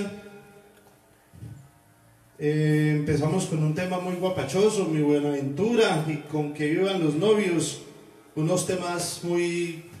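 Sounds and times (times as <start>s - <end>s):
man's amplified voice: 0.0s - 0.7s, 2.4s - 10.0s.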